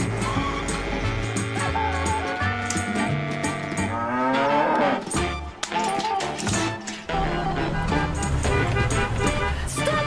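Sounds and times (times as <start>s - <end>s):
background music with bass line: 0.0s - 10.0s
cow mooing: 3.8s - 5.0s.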